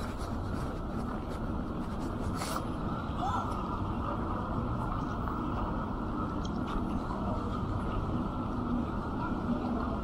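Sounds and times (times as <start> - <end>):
distant traffic rumble: 0.0 - 10.0
passers-by's voices: 0.0 - 10.0.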